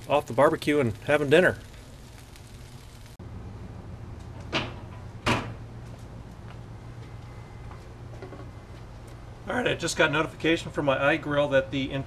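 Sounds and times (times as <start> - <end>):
faint outdoor rumble: 0.0 - 12.0.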